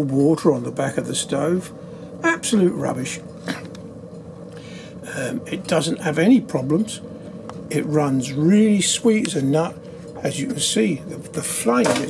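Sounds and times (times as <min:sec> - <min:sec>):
stove boiler humming: 0:00.0 - 0:12.0.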